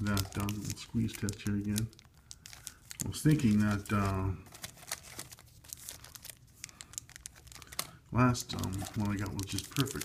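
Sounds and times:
cellophane crinkling: 0.0 - 10.0.

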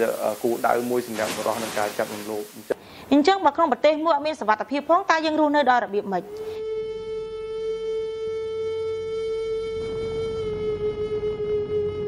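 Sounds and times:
long held flute-like note: 6.3 - 12.0.

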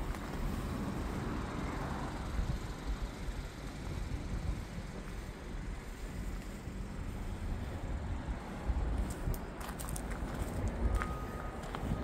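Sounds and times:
wind rumble on microphone: 3.8 - 12.0.

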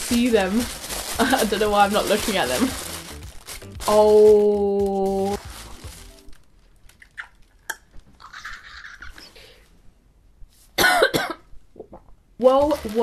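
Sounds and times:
tissue paper rustling: 0.0 - 7.0, 12.6 - 13.0.

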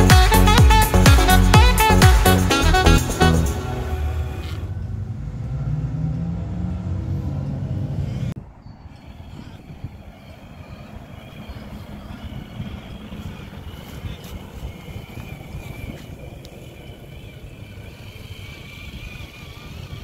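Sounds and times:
electric motor whining: 0.0 - 4.9, 8.8 - 20.0.

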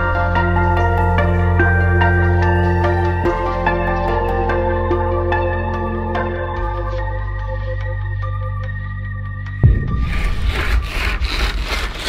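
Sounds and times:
low rumble: 9.6 - 12.0.

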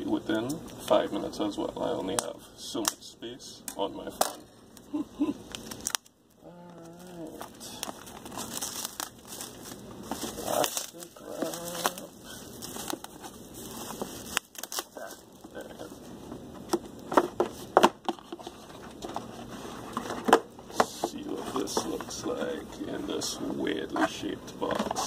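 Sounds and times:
plastic shrink wrap crinkling: 5.4 - 16.0.

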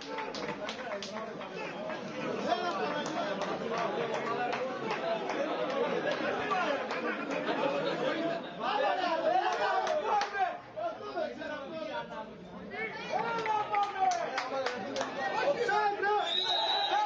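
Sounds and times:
men talking and shouting: 0.0 - 17.0.

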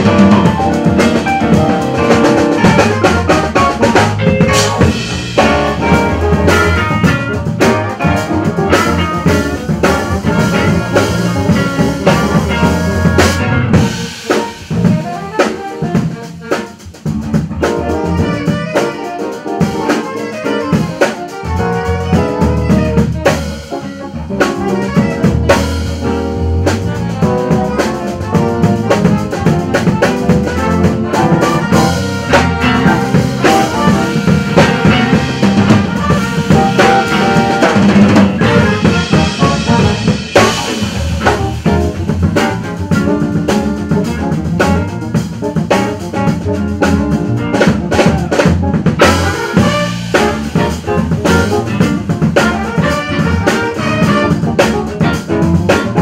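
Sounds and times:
drum kit: 0.0 - 56.0
electric guitar: 0.0 - 56.0
jazz band playing funk: 0.0 - 56.0.

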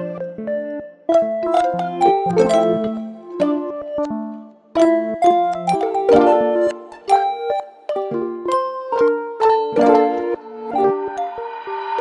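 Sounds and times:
plucked-string melody: 0.0 - 12.0.

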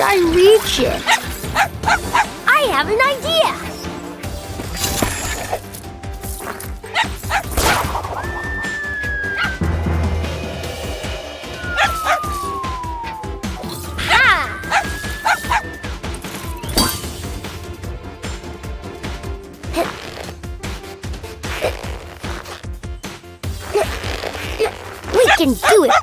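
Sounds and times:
cartoon background music: 0.0 - 26.0
falling whistle: 8.2 - 9.6, 11.4 - 16.7
rising whistle tone: 8.2 - 9.6, 11.0 - 16.8
robot dog yips: 8.6 - 9.6, 11.6 - 16.7, 24.6 - 26.0.

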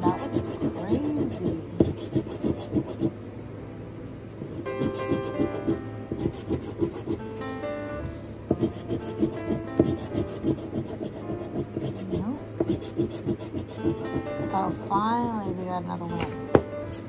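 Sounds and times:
coin scraping scratch ticket: 0.0 - 3.1, 4.5 - 7.3, 8.5 - 14.6.

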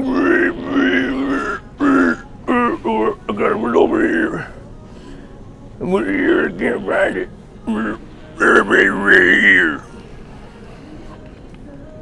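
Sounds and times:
man babbling gibberish: 0.0 - 4.4.

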